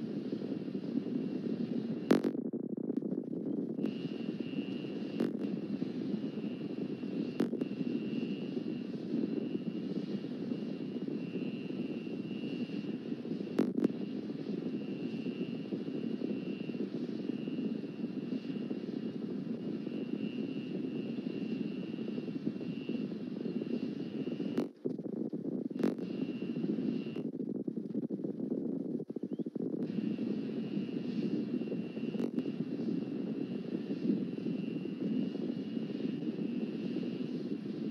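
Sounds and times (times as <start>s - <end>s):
steady low rumbling: 0.0s - 17.0s, 17.6s - 37.9s
thin high-pitched whine: 3.1s - 25.0s, 25.7s - 27.4s, 29.1s - 37.9s.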